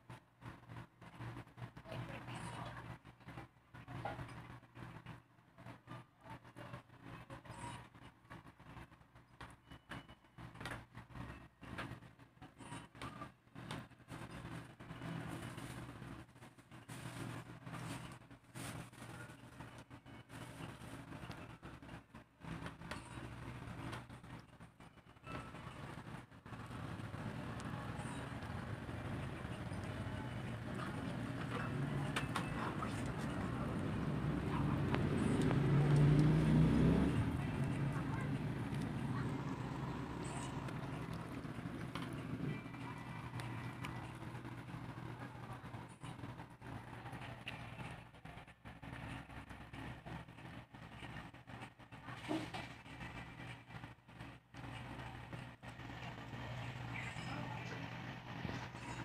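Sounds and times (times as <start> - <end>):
passing vehicle rumble: 26.5 - 47.0.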